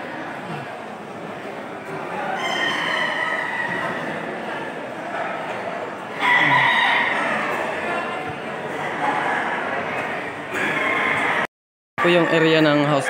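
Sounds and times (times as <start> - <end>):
crowd murmur: 0.0 - 13.0
roosters crowing: 2.2 - 4.5, 6.1 - 8.0, 10.6 - 11.5.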